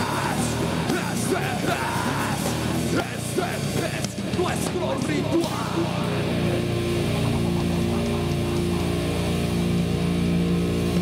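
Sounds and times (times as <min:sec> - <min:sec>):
vocalist yelling into microphone: 0:00.0 - 0:06.4
heavy metal band playing: 0:00.0 - 0:11.0.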